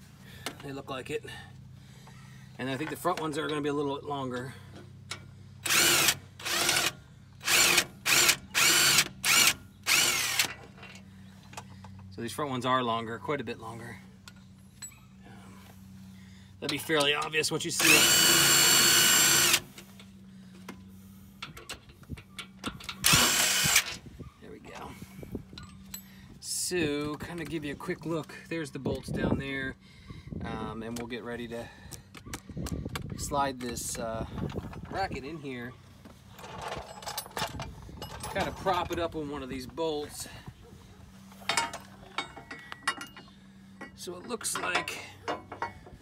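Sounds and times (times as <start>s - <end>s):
metal clinking and scraping: 36.2s - 39.4s, 41.2s - 46.0s.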